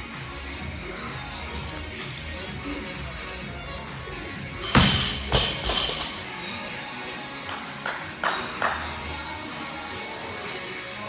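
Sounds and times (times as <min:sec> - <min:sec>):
barbell dropped on gym floor: 0:04.6 - 0:06.1.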